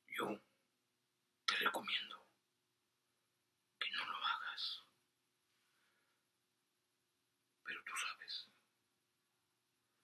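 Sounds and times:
man whispering a hush: 0.0 - 0.5, 1.5 - 2.4, 3.8 - 5.0, 7.6 - 8.6.

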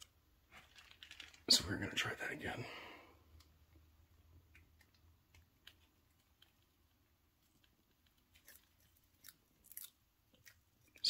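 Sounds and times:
chameleon crunching an insect: 4.5 - 11.0.

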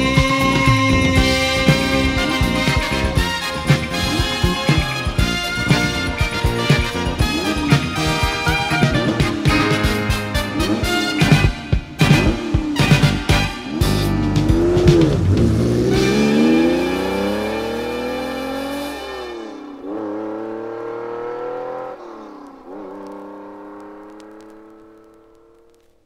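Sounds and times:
car engine accelerating hard: 0.0 - 25.9.

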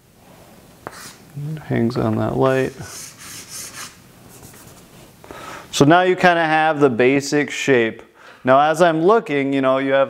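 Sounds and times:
chalk scratching on a chalkboard: 0.8 - 1.2, 2.4 - 4.9.

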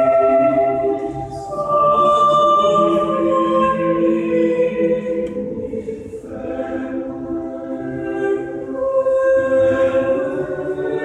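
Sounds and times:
choir singing unaccompanied: 0.0 - 11.0.

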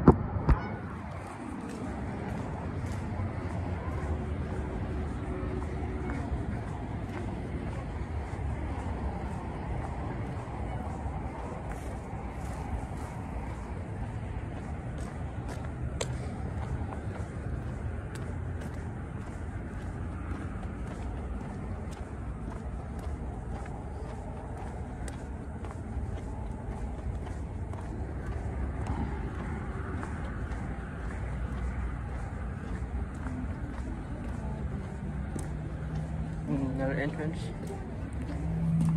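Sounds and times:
distant road traffic rumble: 0.0 - 38.9.

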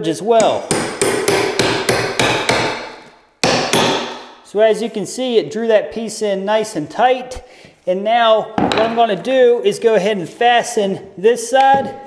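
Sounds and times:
rubber mallet striking pry bar: 0.4 - 4.4.

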